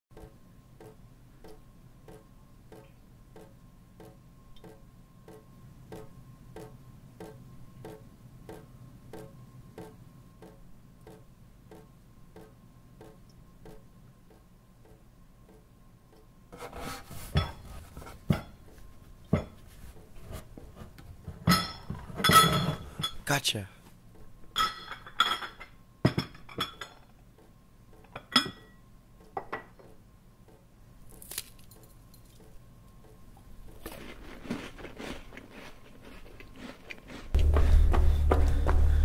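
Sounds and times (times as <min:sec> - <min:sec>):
crockery knocking and clinking: 0:21.4 - 0:23.2.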